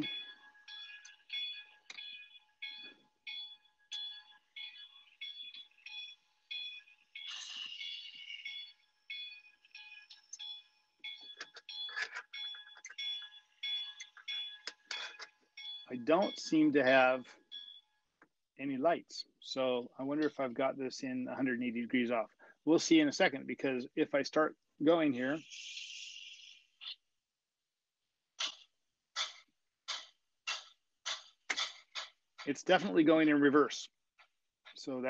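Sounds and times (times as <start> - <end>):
faint steady tone: 0.0 - 18.0.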